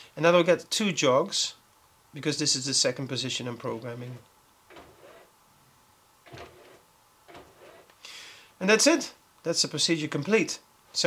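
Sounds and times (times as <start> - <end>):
faint shutter motor jogs: 3.9 - 5.3, 6.2 - 8.0.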